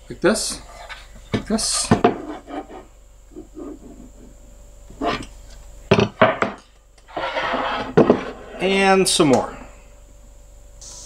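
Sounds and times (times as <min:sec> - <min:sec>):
board scraping on board: 0:01.7 - 0:04.1, 0:07.1 - 0:08.8.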